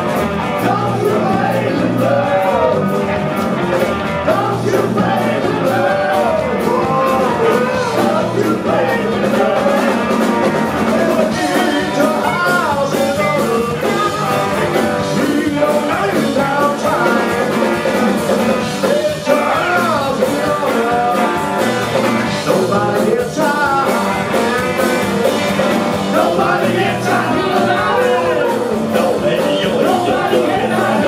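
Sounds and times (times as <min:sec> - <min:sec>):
blues-rock band playing: 0:00.0 - 0:31.0
person singing: 0:00.6 - 0:03.0, 0:04.2 - 0:25.4, 0:26.0 - 0:31.0.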